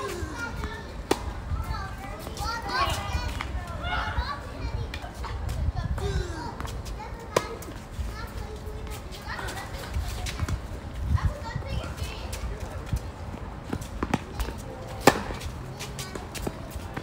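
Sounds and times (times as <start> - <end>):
tennis balls struck by rackets: 0.6 - 1.4, 13.7 - 17.0
tennis balls bouncing on court: 0.6 - 2.4, 13.6 - 17.0.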